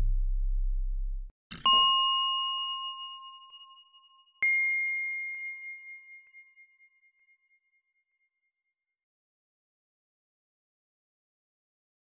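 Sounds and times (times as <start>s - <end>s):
bell-like ding tones: 1.5s - 7.6s.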